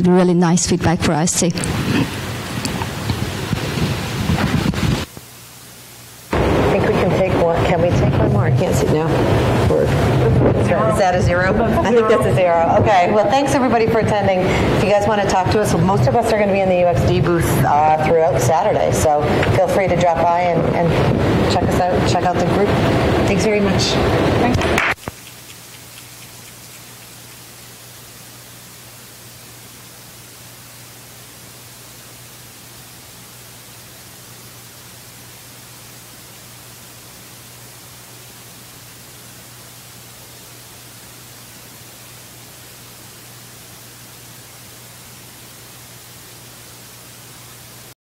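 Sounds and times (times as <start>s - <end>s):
low even hum: 0.0s - 48.0s
steady hiss: 1.2s - 48.0s.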